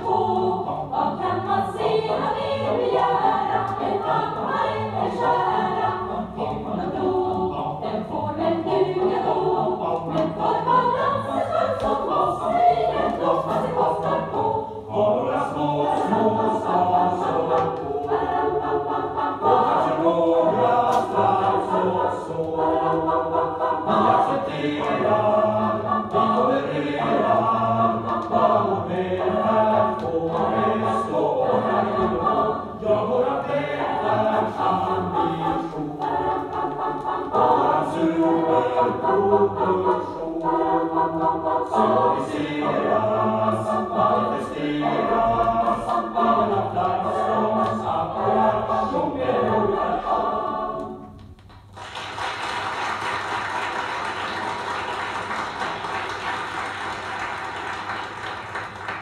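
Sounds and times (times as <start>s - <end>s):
choir singing in harmony: 0.0s - 51.3s, 51.9s - 59.0s.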